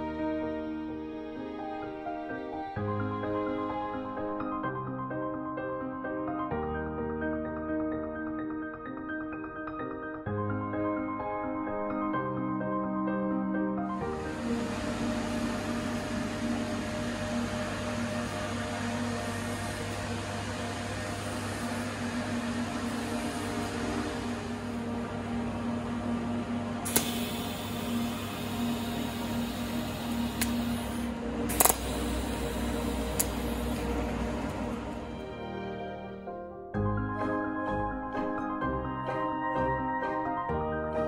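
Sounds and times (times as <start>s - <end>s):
welding equipment humming: 14.1s - 35.3s
sharp metal clicks: 31.5s - 33.8s.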